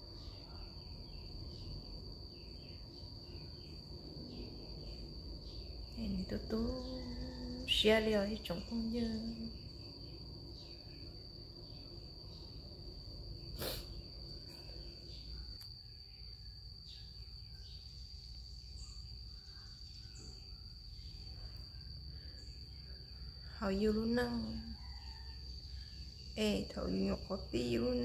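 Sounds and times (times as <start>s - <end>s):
insect trilling: 0.0s - 28.0s.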